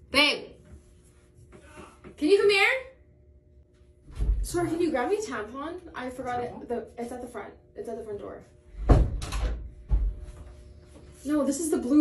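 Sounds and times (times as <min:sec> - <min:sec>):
door thump opening: 0:08.8 - 0:10.2.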